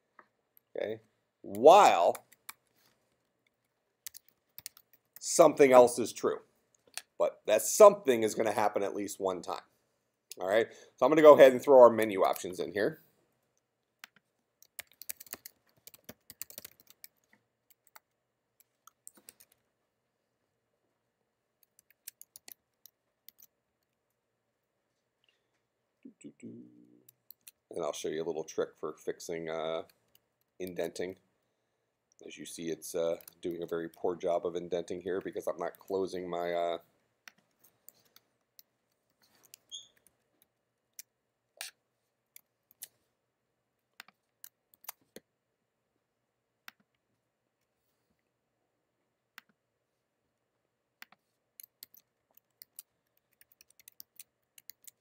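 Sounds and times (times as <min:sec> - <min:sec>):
computer keyboard typing: 0:04.1 - 0:05.0, 0:14.0 - 0:19.6, 0:21.6 - 0:23.5, 0:51.0 - 0:55.0
high squeak: 0:39.7 - 0:40.0.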